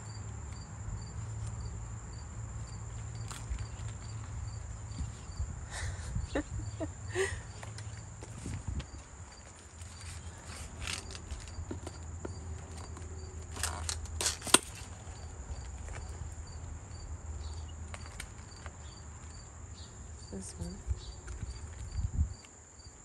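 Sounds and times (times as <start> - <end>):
insects trilling: 0.0 - 23.0
leaves rustling: 7.1 - 17.2.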